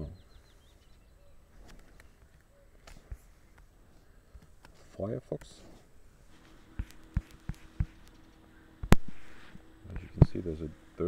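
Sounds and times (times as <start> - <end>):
faint high chirps: 0.0 - 2.8.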